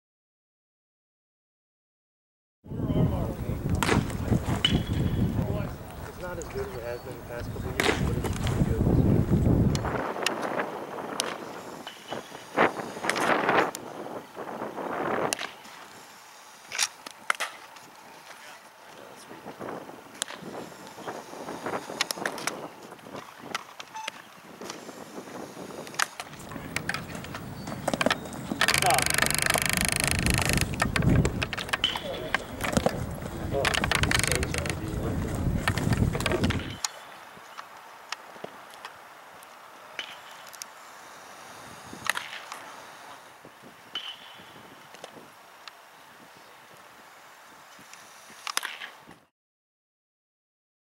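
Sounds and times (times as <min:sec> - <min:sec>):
faint voices: 0:02.7 - 0:09.5, 0:26.3 - 0:36.8
wind buffeting microphone: 0:02.7 - 0:15.4, 0:24.4 - 0:36.8
sharp crack: 0:03.7 - 0:05.0, 0:07.7 - 0:08.5, 0:26.0 - 0:34.9.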